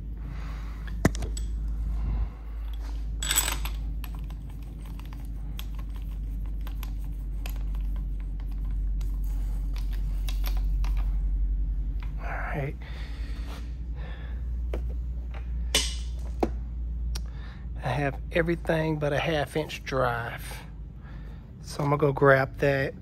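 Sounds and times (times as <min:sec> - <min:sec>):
steady low hum: 0:00.0 - 0:23.0
metal sockets clinking: 0:02.7 - 0:04.3.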